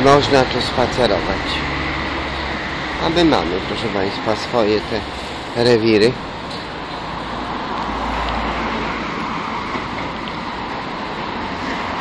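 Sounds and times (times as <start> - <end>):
city street traffic noise: 0.0 - 12.0.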